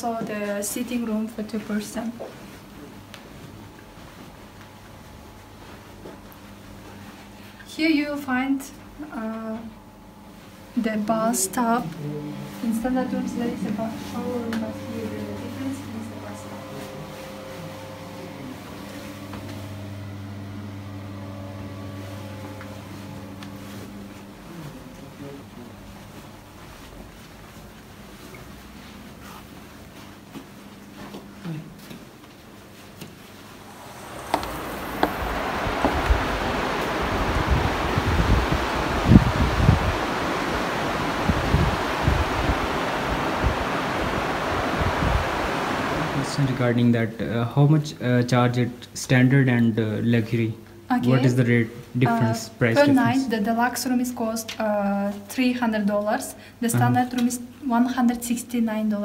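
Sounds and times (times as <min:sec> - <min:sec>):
low mechanical hum: 0:00.0 - 0:59.0
wind blowing over microphone: 0:33.6 - 0:46.6.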